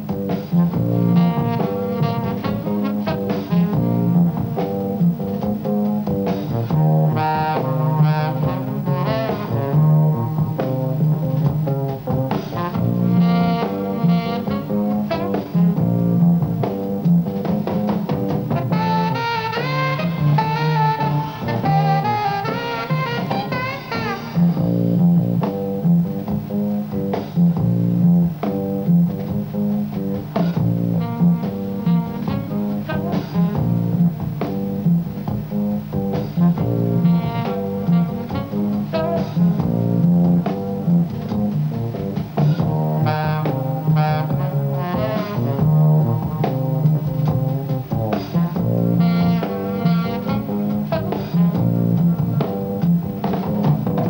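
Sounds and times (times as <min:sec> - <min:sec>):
double bass: 0:00.0 - 0:54.0
drums: 0:00.0 - 0:54.0
saxophone lead line: 0:00.0 - 0:54.0.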